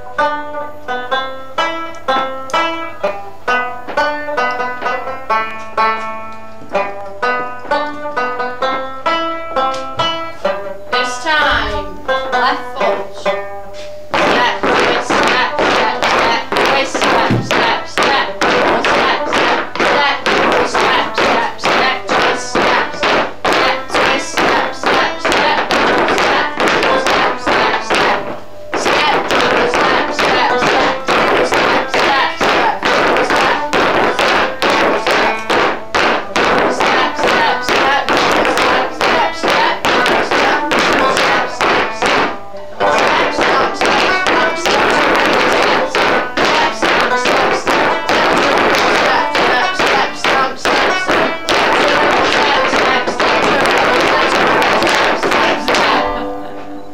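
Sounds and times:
banjo tune: 0:00.0 - 0:56.9
clog dancing on wooden floor: 0:00.9 - 0:13.0, 0:14.1 - 0:56.2.

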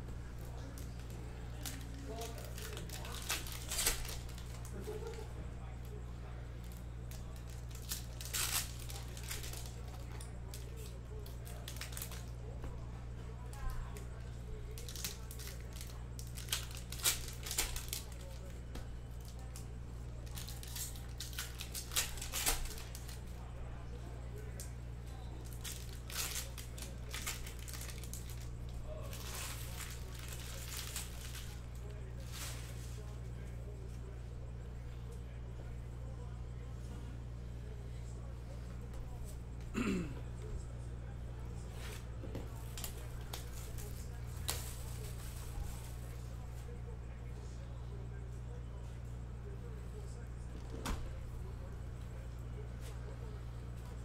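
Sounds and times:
steady low hum: 0:00.0 - 0:54.0
plastic wrappers tearing and crinkling: 0:00.6 - 0:05.2, 0:06.6 - 0:12.4, 0:14.7 - 0:23.4, 0:25.4 - 0:33.0, 0:41.8 - 0:46.2.

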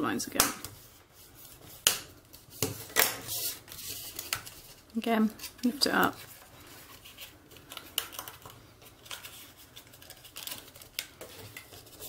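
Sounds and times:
paper rustling and crackling: 0:02.3 - 0:12.0.

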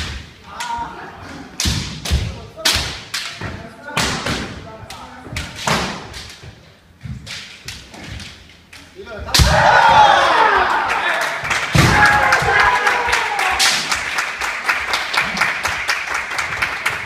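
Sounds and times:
bamboo swords striking armour: 0:01.6 - 0:04.6, 0:05.6 - 0:06.4, 0:09.3 - 0:09.8
fencers shouting: 0:09.1 - 0:14.0.

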